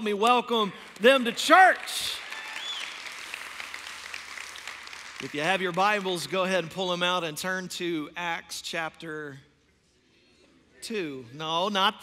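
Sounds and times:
congregation applauding: 0.3 - 7.0.

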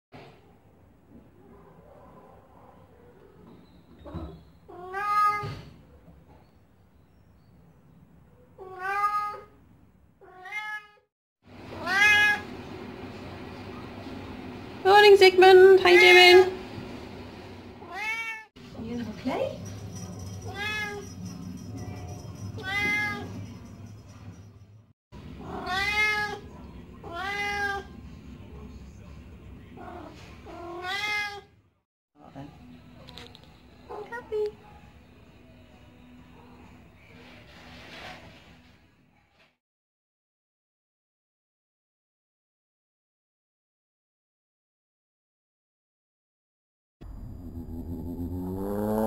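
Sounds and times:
cat meowing: 4.7 - 5.6, 8.6 - 9.5, 10.2 - 11.0, 11.8 - 12.4, 17.8 - 18.5, 20.4 - 21.0, 22.6 - 23.3, 25.4 - 26.4, 27.0 - 27.9, 29.8 - 31.5.

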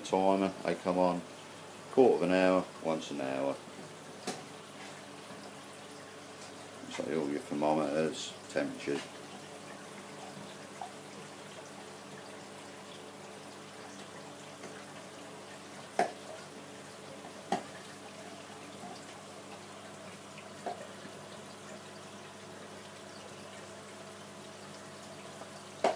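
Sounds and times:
faint pump hum: 0.0 - 25.9
water trickling and bubbling: 0.2 - 25.9.

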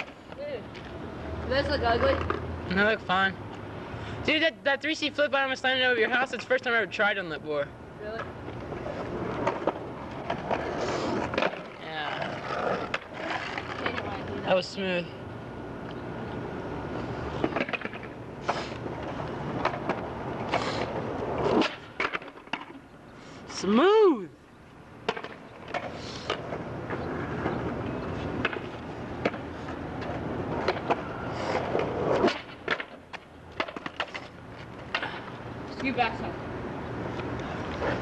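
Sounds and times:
skateboard wheels rolling on asphalt: 0.0 - 38.0
skateboard clacks and impacts: 17.4 - 18.2, 25.0 - 35.9
person shouting: 23.6 - 24.4.

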